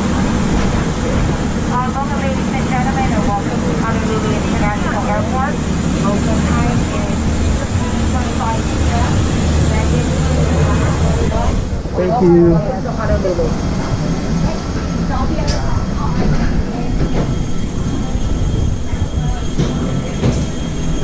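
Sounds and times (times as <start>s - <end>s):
airplane cabin hum: 0.0s - 21.0s
indistinct voices: 0.8s - 21.0s.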